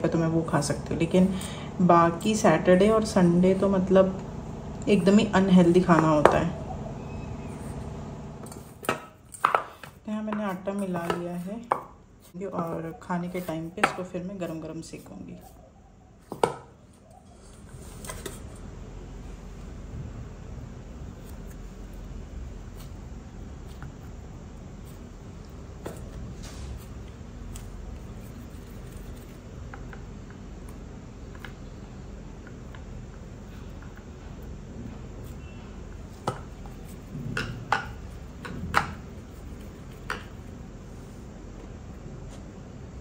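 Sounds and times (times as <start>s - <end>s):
hands shaping dough: 7.4s - 15.6s, 21.0s - 42.6s.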